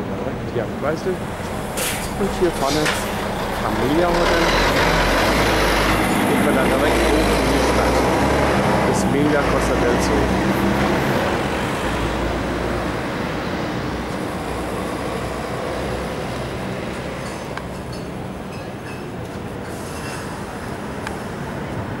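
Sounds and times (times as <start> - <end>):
road noise: 0.0 - 22.0
vehicle engine rumble: 0.0 - 22.0.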